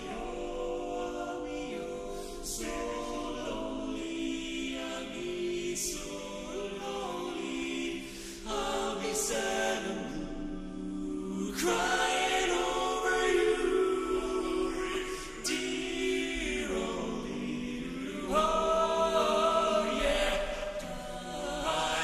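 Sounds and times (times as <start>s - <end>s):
men singing close harmony: 0.0s - 22.0s.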